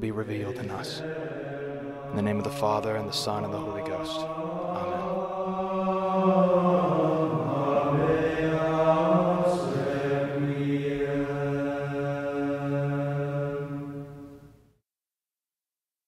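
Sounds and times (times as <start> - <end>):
slow vocal chant: 0.0 - 14.6.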